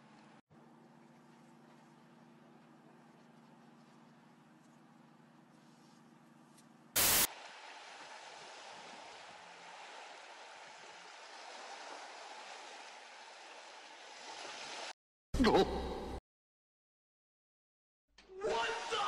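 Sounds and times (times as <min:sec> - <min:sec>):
faint low hum: 0:00.1 - 0:07.0
boat rushing over water: 0:07.3 - 0:14.9.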